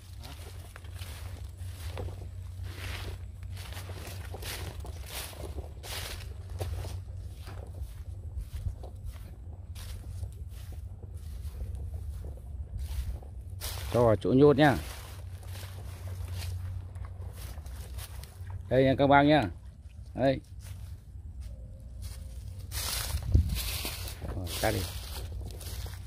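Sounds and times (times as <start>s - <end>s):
footsteps in dry vegetation: 0.0s - 26.0s
steady low rumble: 0.0s - 26.0s.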